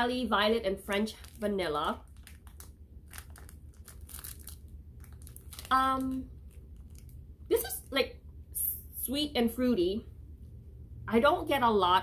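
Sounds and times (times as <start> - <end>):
plastic wrap crinkling: 0.6 - 7.9.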